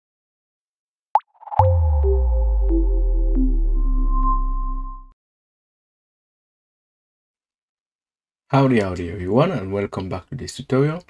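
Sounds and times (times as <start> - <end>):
deep held bass note with higher tone: 1.6 - 5.1.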